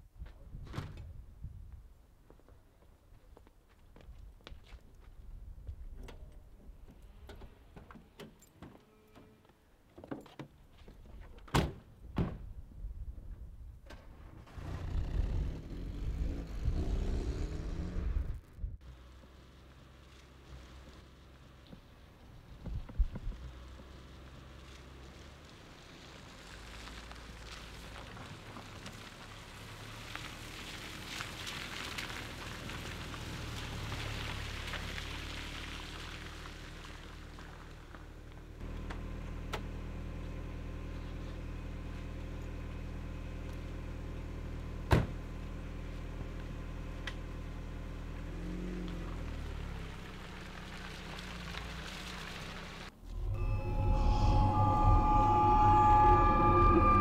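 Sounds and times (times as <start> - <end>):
car driving over wet ground: 14.4 - 42.4, 45.2 - 54.5
eerie music with sustained tones: 53.1 - 57.0.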